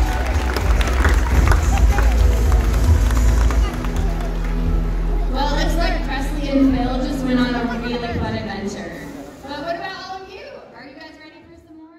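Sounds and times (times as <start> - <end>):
steady low tones: 0.0 - 9.8
background music: 0.0 - 11.9.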